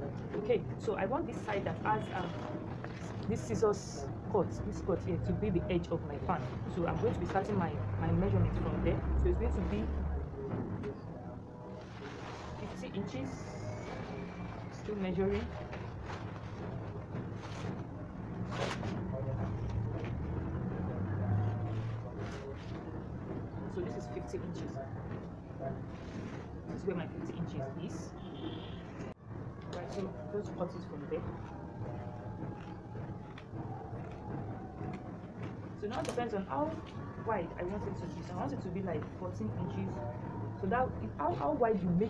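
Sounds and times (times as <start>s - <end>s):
woman speaking: 0.3s - 10.0s, 12.6s - 13.6s, 14.7s - 15.6s, 23.7s - 24.8s, 35.8s - 40.0s, 40.6s - 42.0s.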